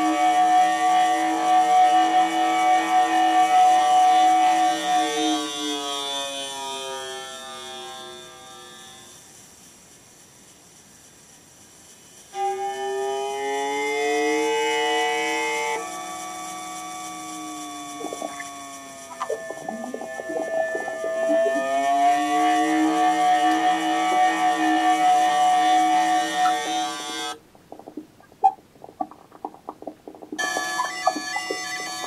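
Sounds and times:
synthesized tones sliding in pitch: 17.2 - 32.0
low upward glide: 18.0 - 23.2.

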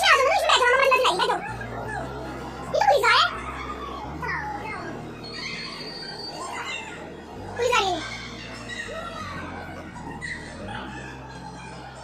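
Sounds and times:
children calling and squealing: 0.0 - 12.0
faint background music: 0.0 - 12.0.

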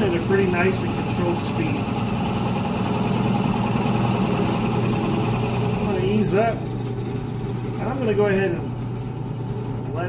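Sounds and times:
drill press motor humming: 0.0 - 10.0.

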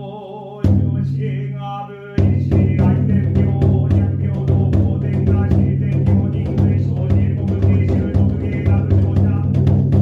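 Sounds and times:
monotone chanting: 0.0 - 9.8
taiko drum beats: 0.6 - 1.2, 2.2 - 10.0.

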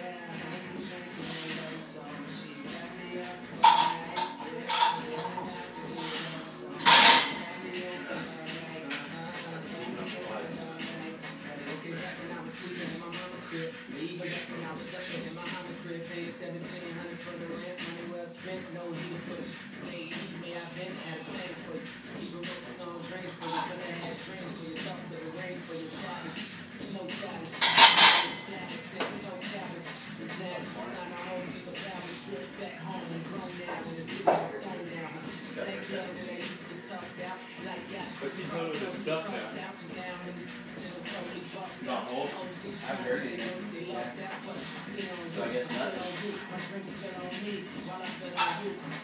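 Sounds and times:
rap music: 0.0 - 49.0.

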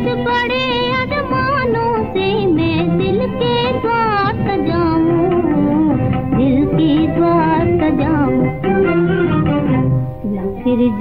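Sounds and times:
old film song playing: 0.0 - 11.0
plucked and bowed strings: 0.0 - 11.0.

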